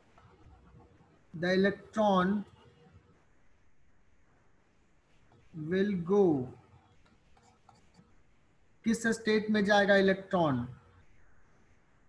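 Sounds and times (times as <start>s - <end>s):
stylus scratching on tablet: 0.0s - 3.4s, 5.1s - 8.4s.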